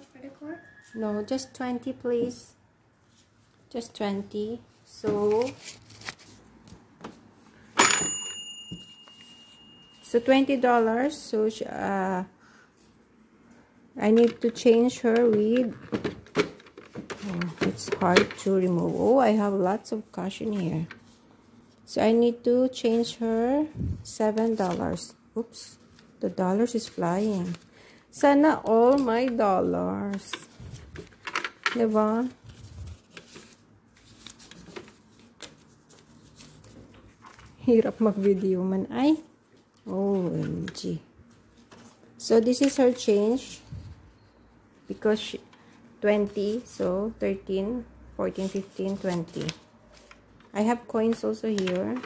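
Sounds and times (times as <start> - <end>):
paper banknotes rustling: 5.2 - 6.6, 25.8 - 27.7, 30.2 - 38.7, 48.3 - 52.0
toy cash register bell ringing: 7.8 - 10.4.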